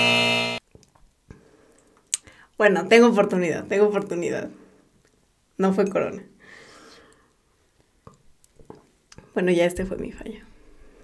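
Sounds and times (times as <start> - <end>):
wrong-answer buzzer: 0.0 - 0.6.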